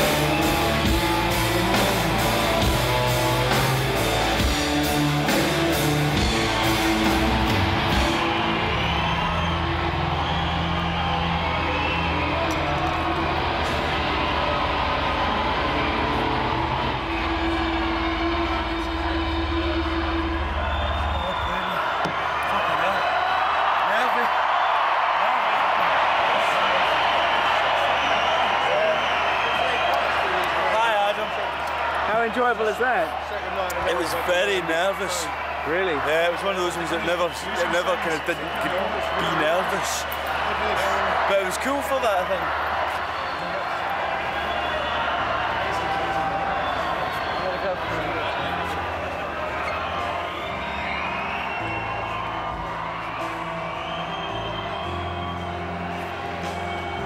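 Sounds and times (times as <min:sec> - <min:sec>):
rock band playing: 0:00.0 - 0:20.6, 0:49.8 - 0:57.0
crowd cheering: 0:00.0 - 0:57.0.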